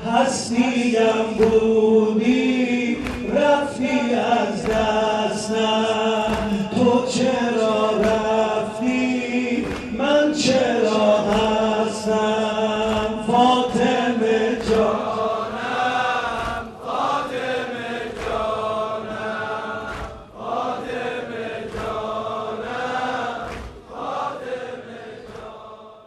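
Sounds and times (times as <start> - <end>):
man chanting a lament: 0.0 - 16.7
congregation voices joining in: 0.0 - 26.0.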